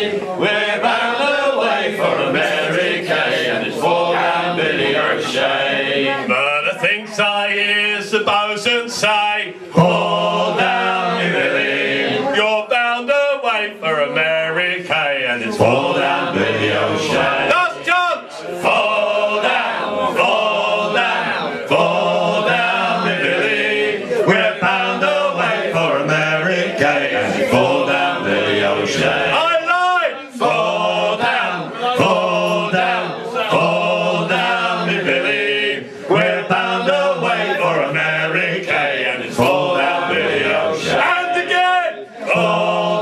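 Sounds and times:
men singing unaccompanied: 0:00.0 - 0:43.0.

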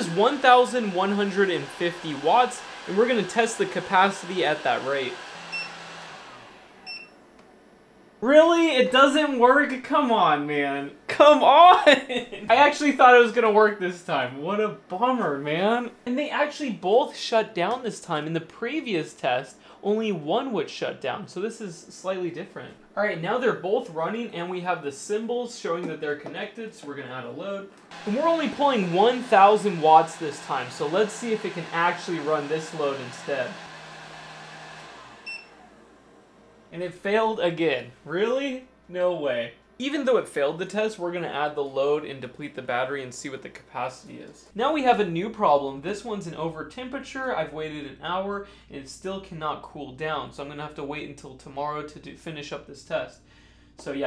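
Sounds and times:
heat gun fan winding down: 0:00.0 - 0:07.5, 0:27.7 - 0:44.3.

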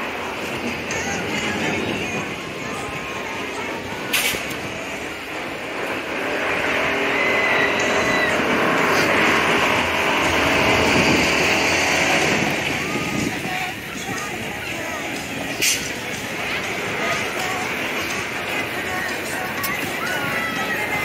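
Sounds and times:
crowd voices: 0:00.0 - 0:21.0
machine-like rumble: 0:00.0 - 0:21.0.

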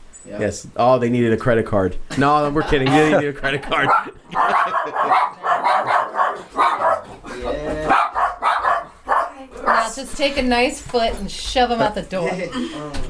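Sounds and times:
voices: 0:02.5 - 0:13.0
dogs barking: 0:03.7 - 0:07.3, 0:07.9 - 0:10.0.

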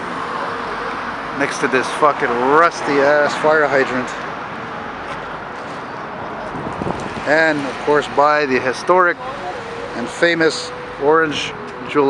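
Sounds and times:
cars passing on busy road: 0:00.0 - 0:12.0.

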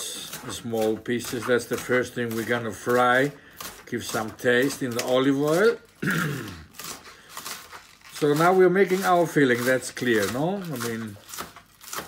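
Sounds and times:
knife chopping on plastic board: 0:00.0 - 0:05.8, 0:08.4 - 0:12.0
man clearing throat: 0:06.0 - 0:06.8.

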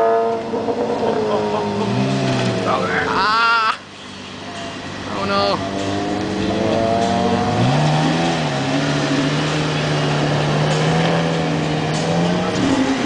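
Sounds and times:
sports car engine revving: 0:00.0 - 0:03.3, 0:04.8 - 0:13.0.

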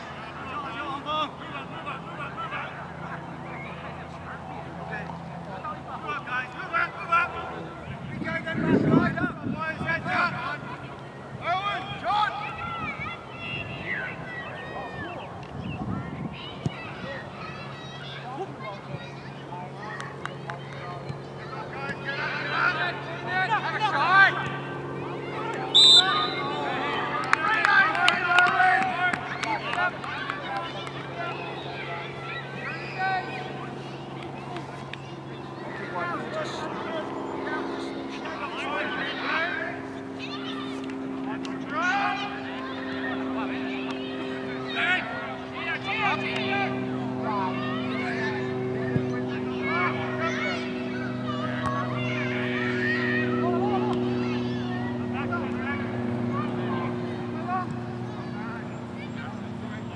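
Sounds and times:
low machine hum: 0:00.0 - 0:59.9
players shouting: 0:05.0 - 0:15.5, 0:16.3 - 0:59.9.

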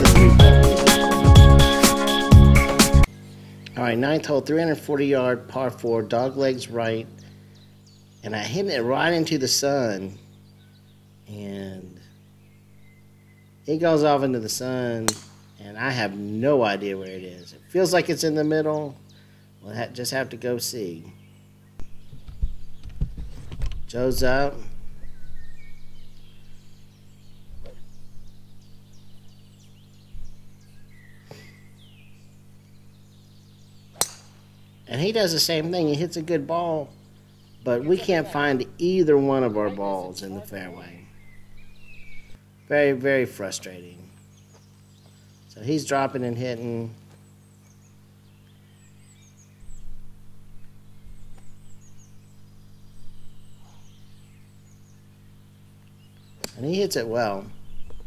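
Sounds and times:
birds chirping and singing: 0:00.1 - 0:58.0
steady low hum: 0:02.4 - 0:58.0
golf club striking ball: 0:15.1 - 0:15.6, 0:33.9 - 0:34.7, 0:56.4 - 0:56.6
wind buffeting microphone: 0:21.9 - 0:25.6.

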